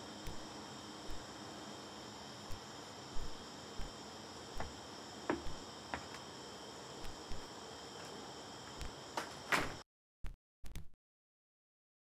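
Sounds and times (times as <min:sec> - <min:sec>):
crickets singing: 0:00.0 - 0:09.8.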